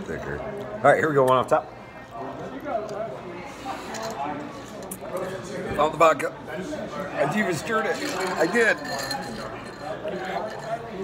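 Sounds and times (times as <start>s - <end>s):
background chatter: 0.0s - 11.0s
ice rattling in a glass: 7.8s - 11.0s.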